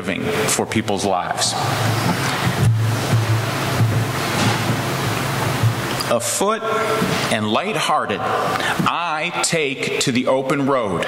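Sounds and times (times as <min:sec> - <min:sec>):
low steady hum: 0:00.0 - 0:11.0
rushing wash of noise: 0:01.4 - 0:07.4.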